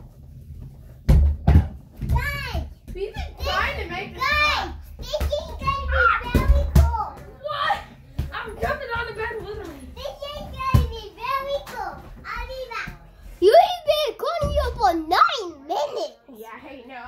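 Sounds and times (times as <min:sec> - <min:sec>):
children shouting and squealing: 0:03.4 - 0:08.0.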